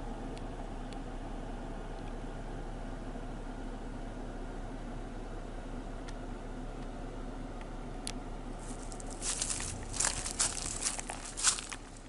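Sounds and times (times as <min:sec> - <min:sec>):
low steady hum: 0:00.0 - 0:12.0
crinkling and rustling crackles: 0:08.6 - 0:12.0.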